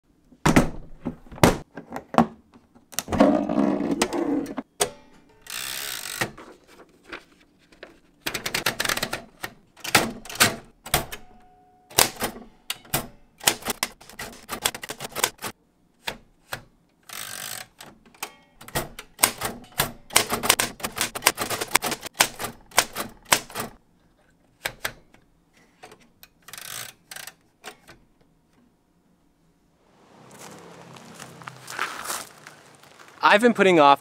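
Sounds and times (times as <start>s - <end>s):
typewriter carriage return sliding: 8.3s - 23.8s
typewriter key strikes: 9.8s - 15.5s, 18.2s - 23.8s.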